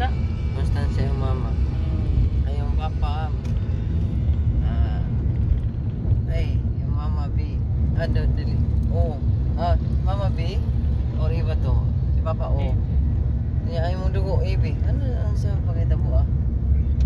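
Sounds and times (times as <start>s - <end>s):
people talking: 0.0s - 3.4s, 4.6s - 5.2s, 6.3s - 10.6s, 13.7s - 16.3s
car interior rumble: 0.0s - 17.0s.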